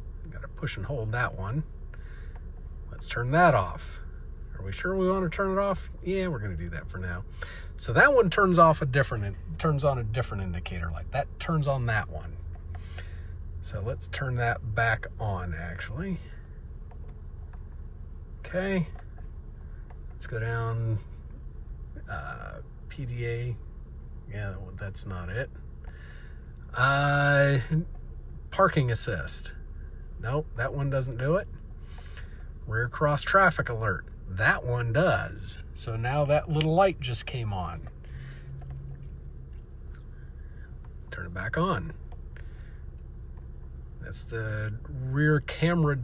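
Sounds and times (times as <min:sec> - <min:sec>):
low hum in car cabin: 0:00.0 - 0:46.0
steering wheel button clicks: 0:16.8 - 0:18.0, 0:18.8 - 0:20.2, 0:37.8 - 0:41.1, 0:41.9 - 0:43.6.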